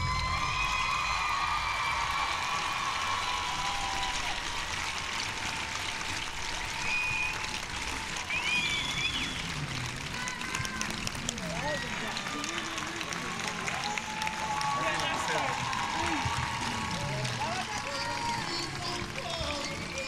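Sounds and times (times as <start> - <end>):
crowd cheers or whistles: 0.0 - 10.6, 13.6 - 18.8
crowd applauding: 0.0 - 20.0.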